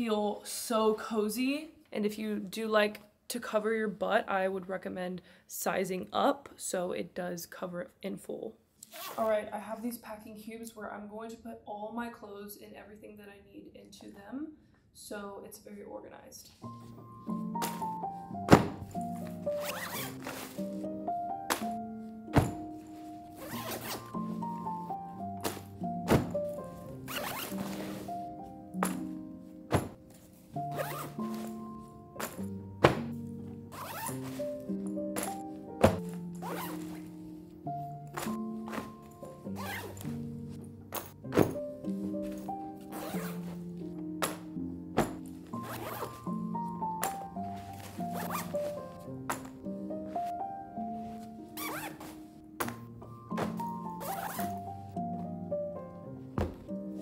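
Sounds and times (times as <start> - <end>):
zipper pulled quickly: 8.8 - 9.3, 19.6 - 20.4, 23.4 - 24.1, 27.1 - 28.0, 30.7 - 31.3, 33.7 - 34.5, 36.4 - 36.9, 39.6 - 40.0, 42.9 - 43.4, 45.6 - 46.2, 51.6 - 52.1, 54.0 - 54.6
zipper being pulled: 8.8 - 9.4, 19.2 - 20.7, 23.3 - 24.6, 27.0 - 28.3, 30.6 - 31.6, 33.7 - 37.1, 38.2 - 40.1, 42.2 - 43.6, 45.0 - 46.3, 47.5 - 48.8, 51.6 - 52.2, 53.9 - 54.7
background music with stepped melody: 16.6 - 57.0
thump: 18.5 - 18.9, 29.7 - 30.0, 56.4 - 56.6.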